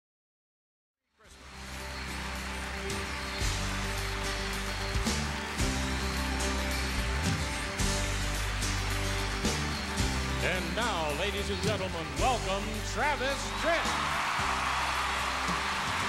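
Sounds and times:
instrumental music with beat: 0:01.7 - 0:16.0.

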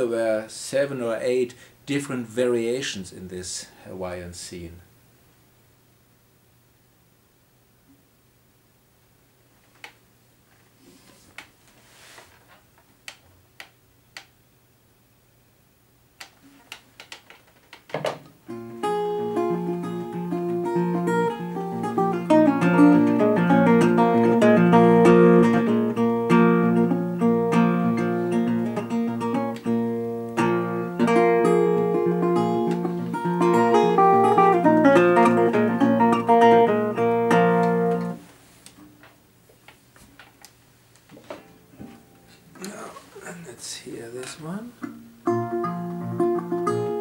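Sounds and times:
fingerpicked resonator guitar: 0:18.5 - 0:38.2, 0:44.8 - 0:47.0.

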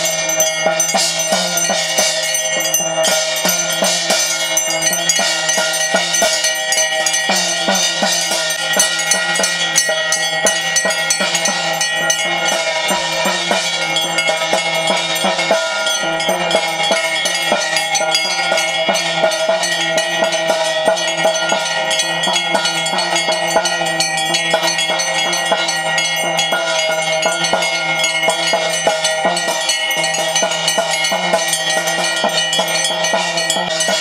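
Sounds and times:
percussion: 0:00.0 - 0:34.0
ringing metal bells: 0:00.0 - 0:34.0.

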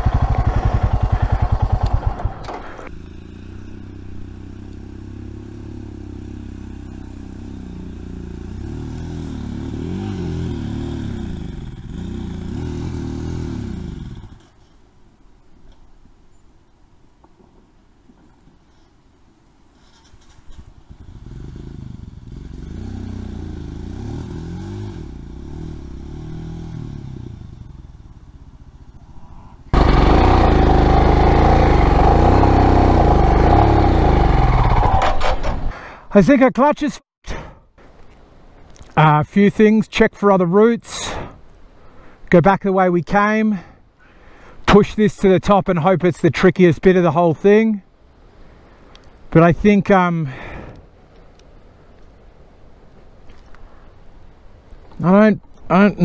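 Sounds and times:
off-road motorcycle engine revving: 0:00.0 - 0:14.7, 0:19.8 - 0:35.8.

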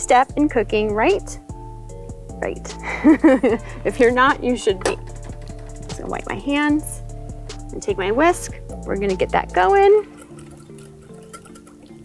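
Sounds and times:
soft background music: 0:00.0 - 0:12.0
liquid sloshing: 0:10.0 - 0:12.0
whisk clicking in bowl: 0:10.0 - 0:12.0.

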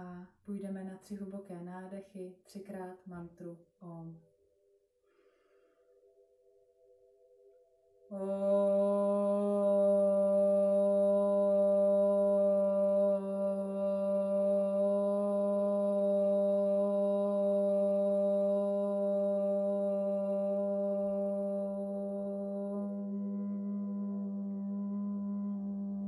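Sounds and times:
woman chanting om: 0:08.1 - 0:26.0.

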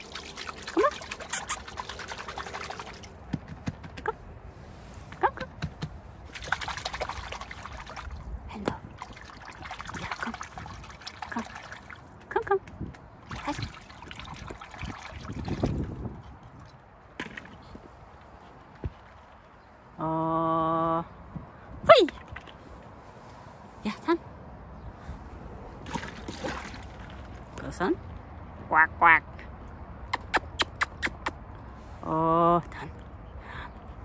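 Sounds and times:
water sloshing and trickling: 0:00.0 - 0:03.3, 0:06.1 - 0:19.9, 0:25.7 - 0:28.5.

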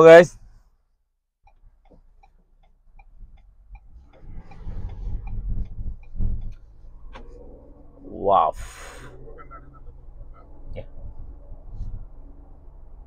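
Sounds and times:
car engine and road rumble: 0:00.0 - 0:13.0
turn signal ticking: 0:01.4 - 0:08.2, 0:09.0 - 0:13.0.

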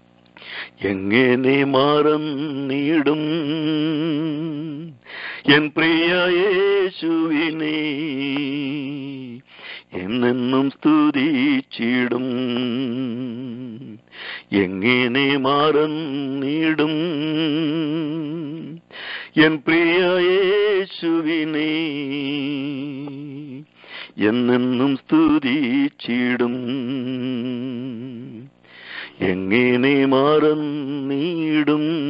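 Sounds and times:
man singing with vibrato: 0:00.4 - 0:32.0.

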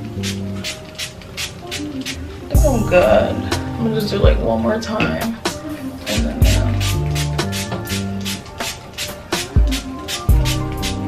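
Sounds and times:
spray bottle hissing spurts: 0:00.0 - 0:03.2, 0:05.5 - 0:11.0
background music: 0:00.0 - 0:11.0.

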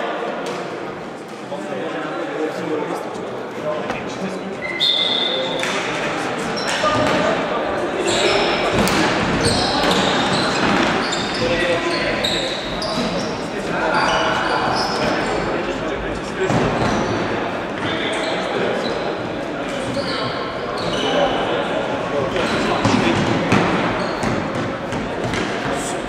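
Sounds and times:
shoes squeaking on wooden floor: 0:08.0 - 0:13.4, 0:19.7 - 0:21.4.

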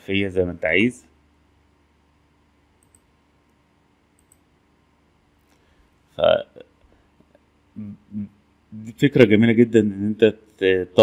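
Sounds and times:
faint computer mouse clicks: 0:02.8 - 0:03.1, 0:04.1 - 0:04.5.

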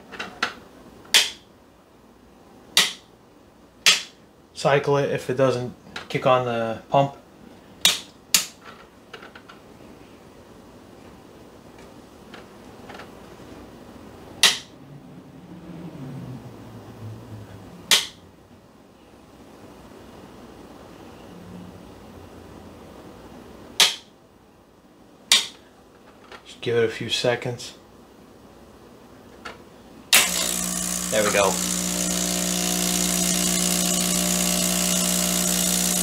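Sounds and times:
faint low hum: 0:13.3 - 0:23.5.

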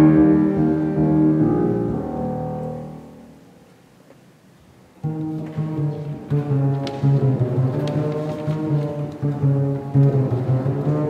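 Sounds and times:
low held bass notes: 0:00.0 - 0:03.6.

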